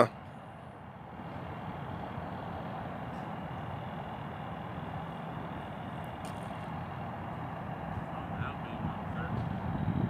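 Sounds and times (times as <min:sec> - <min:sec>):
low engine rumble: 0:00.0 - 0:10.0.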